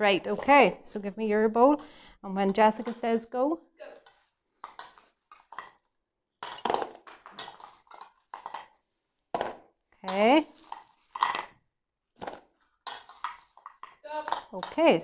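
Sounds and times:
metal spoon scraping a bowl: 12.8 - 15.0.

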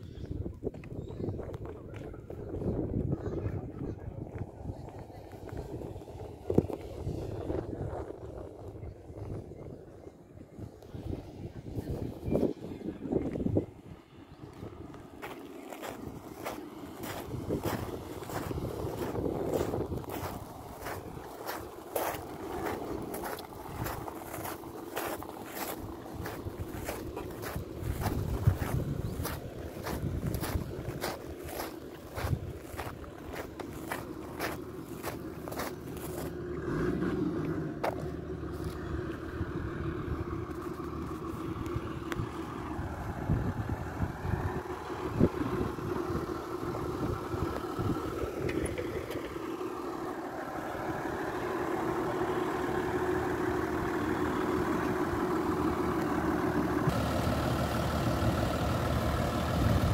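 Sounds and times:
engine idling: 1.3 - 59.9
footsteps on gravel: 14.6 - 36.8, 37.4 - 39.3, 40.5 - 42.3.

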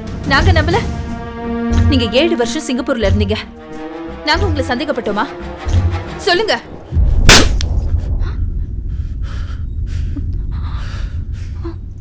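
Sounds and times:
steady low rumble: 0.0 - 12.0
slap across face: 7.3 - 7.7.

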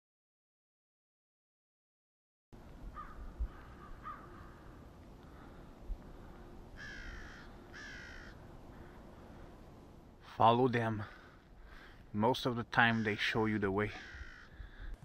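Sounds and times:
crows cawing: 2.9 - 9.6, 11.0 - 12.0, 12.8 - 15.0.

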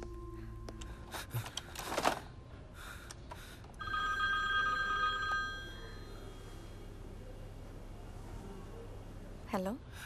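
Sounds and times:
mobile phone ringing: 3.8 - 6.2.

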